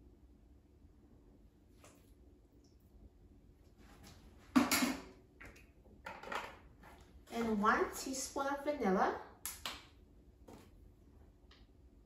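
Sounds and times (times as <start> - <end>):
kitchen items clattering: 4.6 - 5.2.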